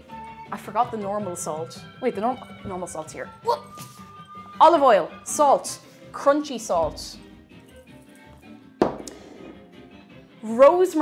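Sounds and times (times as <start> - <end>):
quiet background music: 0.0 - 11.0
glass jar knocking on worktop: 8.8 - 9.6.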